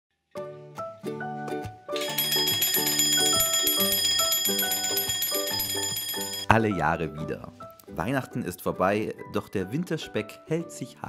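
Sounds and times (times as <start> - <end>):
background music: 0.3 - 11.0
twin-bell alarm clock ringing: 2.0 - 6.5.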